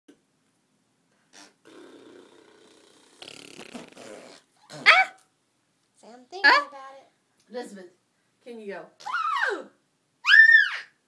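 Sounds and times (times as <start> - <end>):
young child's soft noises: 6.0 - 7.1
child squealing: 9.0 - 11.0.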